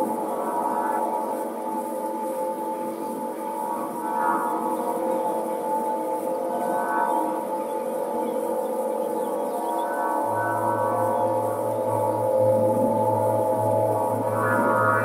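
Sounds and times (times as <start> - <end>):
wind harp drone: 0.0 - 15.0.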